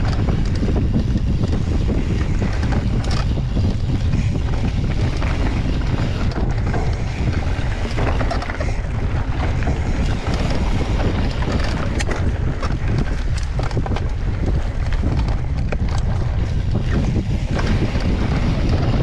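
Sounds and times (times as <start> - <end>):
bike clicking and rattling: 0.0 - 19.0
tyres rolling over dirt: 0.0 - 19.0
wind buffeting microphone: 0.0 - 19.0.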